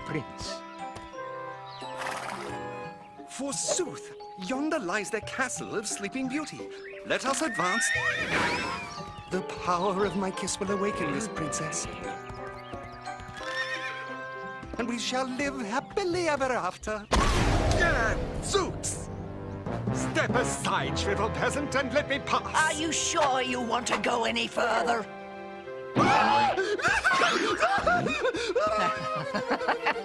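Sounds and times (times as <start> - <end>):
background music: 0.0 - 30.0
hooves clip-clopping: 5.8 - 17.0
horse whinnying: 7.3 - 9.1, 13.3 - 14.3
cartoon horse laughing: 26.5 - 30.0.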